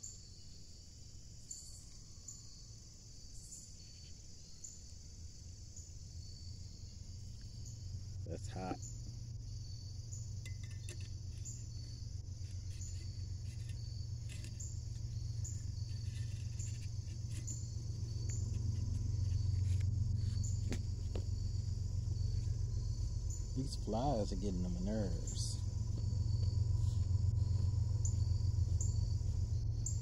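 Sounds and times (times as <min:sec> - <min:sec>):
insects chirping: 0:00.0 - 0:30.0
low rumble: 0:11.0 - 0:30.0.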